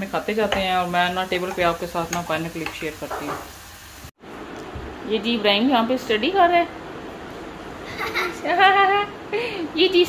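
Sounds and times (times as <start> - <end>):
fries sizzling in hot oil: 0.0 - 4.2.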